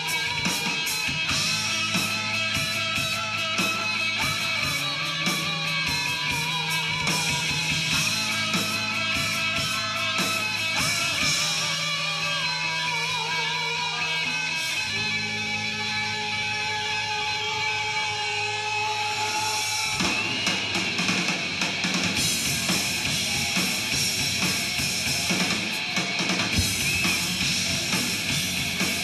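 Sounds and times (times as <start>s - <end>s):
drum kit and full band: 0.0s - 29.0s
guitar holding long notes: 0.0s - 29.0s
low bass notes: 0.0s - 29.0s.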